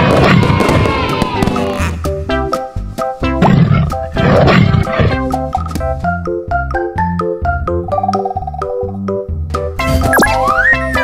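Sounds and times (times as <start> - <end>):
background music: 0.0 - 11.0
tiger roaring: 3.4 - 5.3.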